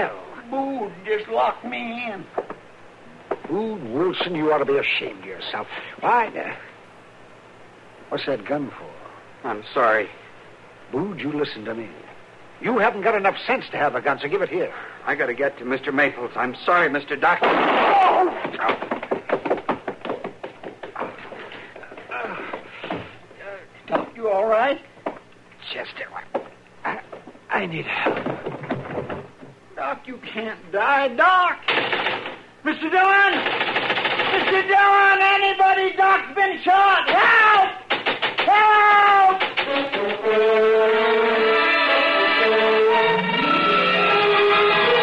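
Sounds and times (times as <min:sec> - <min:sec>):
man groaning and gasping: 0:22.1 - 0:22.7
man shouting: 0:32.7 - 0:33.5, 0:34.2 - 0:39.5
orchestral music with brass chords: 0:40.0 - 0:45.0.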